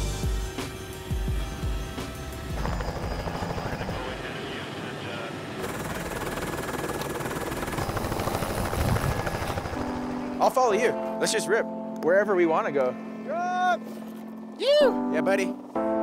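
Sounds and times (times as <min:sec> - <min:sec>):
helicopter cabin drone: 0:00.0 - 0:11.0
helicopter rotor and turbine rush: 0:00.0 - 0:11.6.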